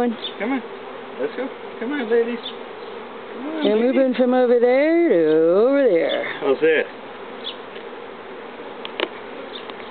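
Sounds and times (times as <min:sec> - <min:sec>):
swarm of bees humming: 0:00.0 - 0:09.9.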